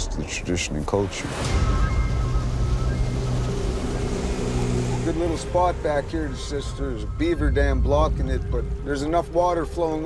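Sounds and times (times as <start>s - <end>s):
outboard motor droning: 1.5s - 10.0s.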